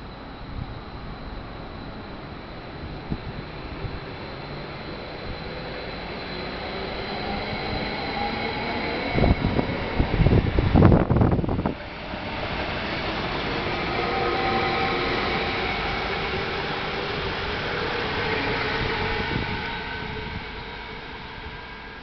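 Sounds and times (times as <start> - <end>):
train passing at speed: 0.0 - 22.0
wind gusts on microphone: 7.2 - 13.7, 18.6 - 21.6.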